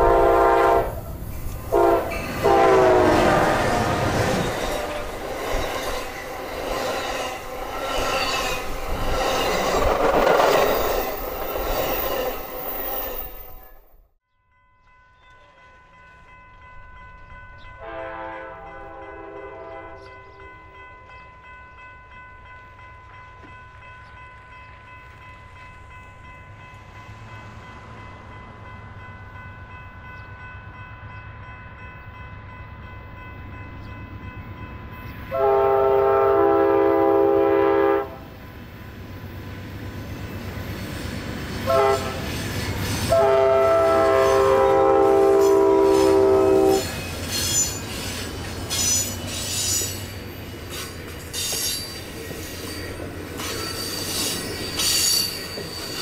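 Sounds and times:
train chord horn: 0.0 - 1.0, 1.7 - 5.0, 17.8 - 20.5, 35.3 - 38.4, 41.6 - 42.4, 43.0 - 47.1.

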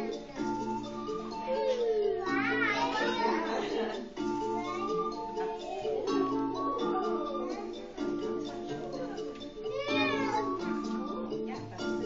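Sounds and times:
children's dance music: 0.0 - 12.0.

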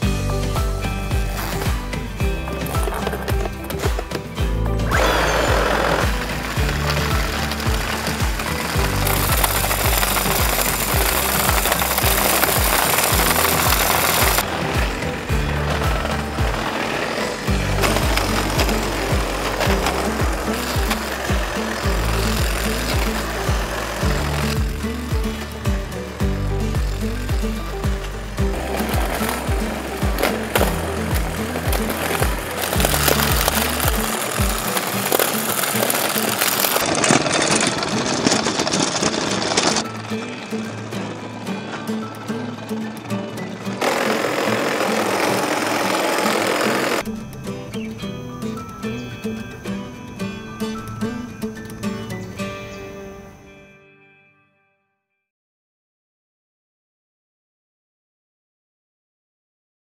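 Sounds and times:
background music with beat and bass: 0.0 - 36.8
wire weed brush scraping ground: 4.8 - 42.0, 43.6 - 47.1.

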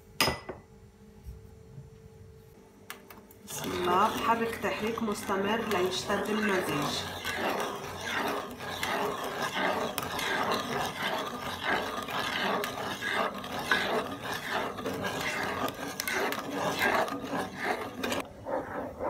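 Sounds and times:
wooden spoon scraping a pan: 3.5 - 18.3.

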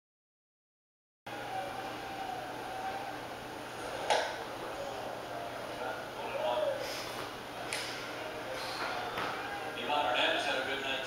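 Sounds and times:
indistinct talking: 1.3 - 11.0.

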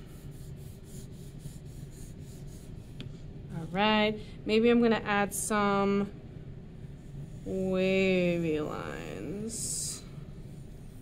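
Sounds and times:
pencil scratching on paper: 0.0 - 3.0, 7.0 - 11.0.

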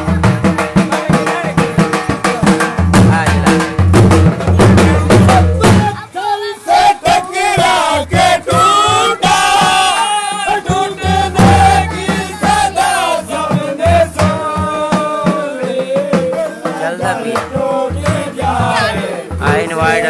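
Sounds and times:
dhol drumming: 0.0 - 20.0.

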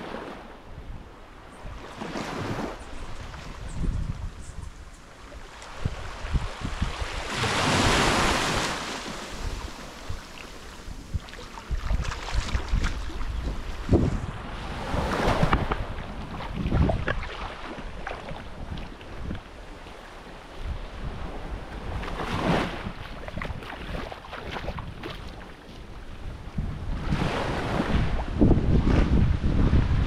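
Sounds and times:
small waves washing onto beach: 0.0 - 30.0
wind buffeting microphone: 0.6 - 19.8, 20.5 - 30.0.

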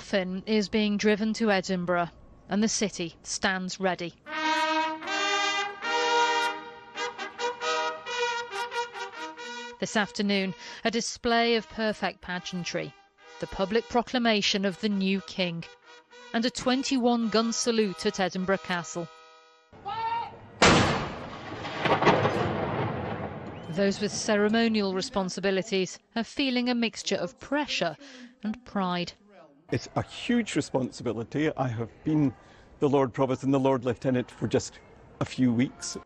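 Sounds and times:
trumpet fanfare: 4.3 - 10.6, 11.3 - 19.7
long rumbling echo: 20.4 - 24.8
field gun firing: 20.6 - 23.7
sharp crack: 20.6 - 23.8.

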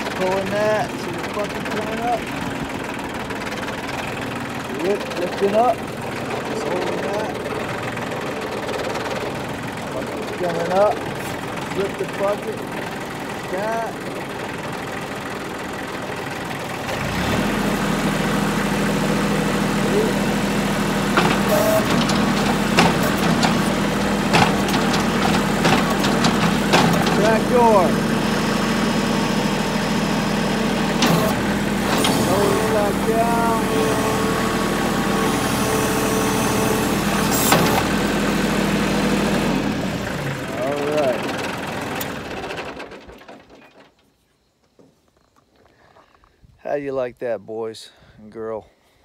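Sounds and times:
hydraulics lifting bucket: 0.0 - 44.1
tractor engine running: 0.0 - 44.8
short knocks: 21.1 - 27.5.

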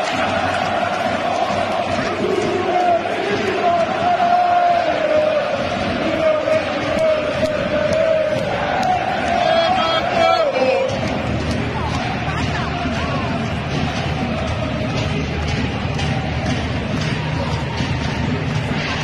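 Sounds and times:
football crowd chanting: 0.0 - 19.0.

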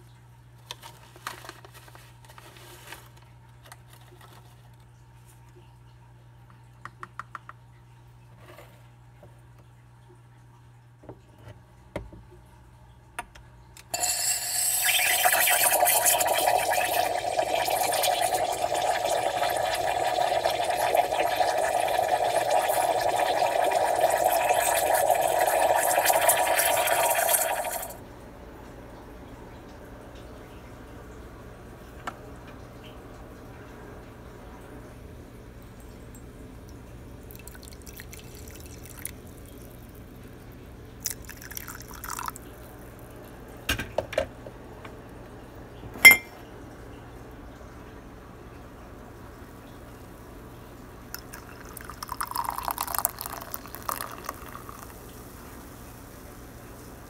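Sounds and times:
coffee pouring into a mug: 13.9 - 28.0, 37.2 - 40.0, 41.0 - 43.3, 51.1 - 55.7.

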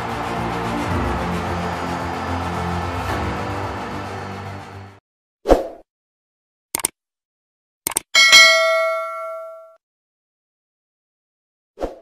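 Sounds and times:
notification bell ding: 8.2 - 9.8.

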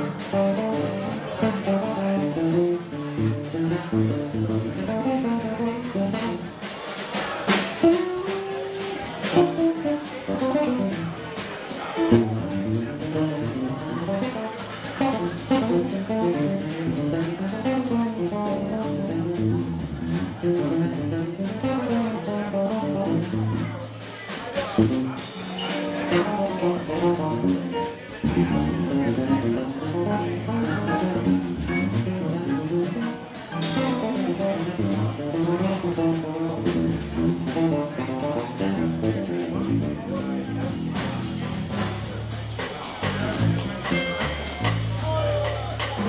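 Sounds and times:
electric bass guitar melody: 0.0 - 6.8, 7.5 - 24.1, 24.8 - 46.0
drum kit cymbals: 0.0 - 46.0.

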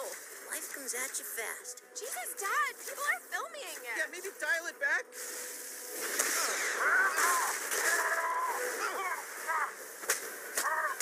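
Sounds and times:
strained vocal cries: 6.4 - 9.9, 10.6 - 11.0.

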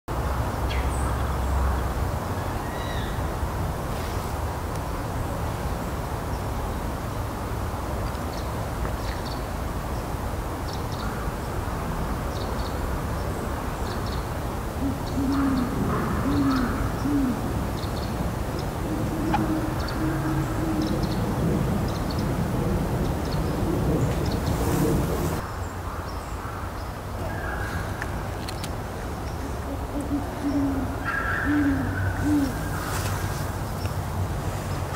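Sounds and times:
owl hooting: 14.8 - 17.6, 18.8 - 21.3, 29.4 - 33.0.

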